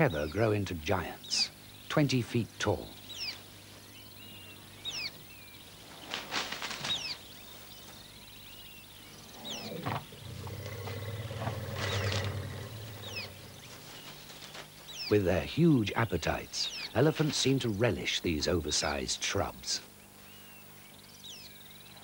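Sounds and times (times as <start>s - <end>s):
shrubs rustling and crackling: 2.6s - 22.0s
elephant rumbling: 9.2s - 14.3s.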